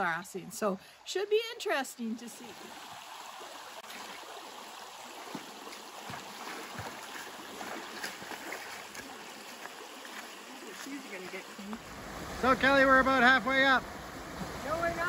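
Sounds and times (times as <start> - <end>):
creek water running: 0.0 - 15.0.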